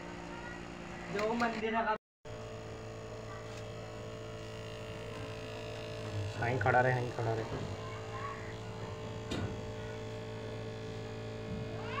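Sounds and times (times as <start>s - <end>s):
small fan motor humming: 0.0s - 12.0s.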